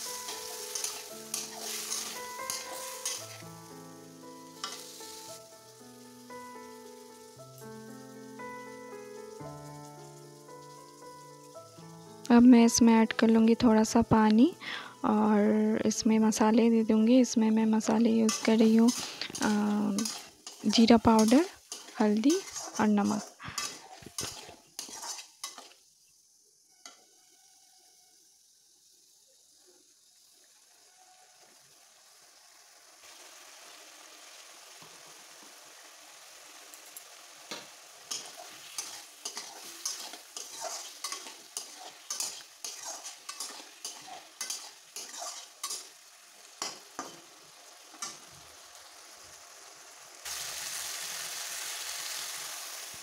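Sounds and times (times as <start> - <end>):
metal spatula scraping pan: 0.0 - 3.4, 18.3 - 25.8, 38.1 - 45.9
food sizzling in oil: 0.0 - 53.0.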